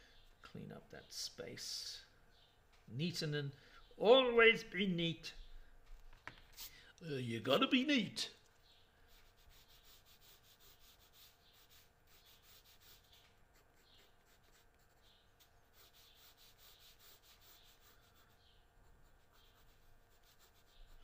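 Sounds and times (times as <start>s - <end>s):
pencil scratching on paper: 9.1s - 21.0s.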